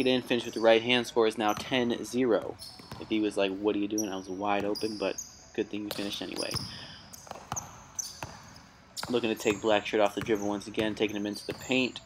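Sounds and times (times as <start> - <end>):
basketball bouncing on court: 1.4 - 3.4, 5.8 - 12.0.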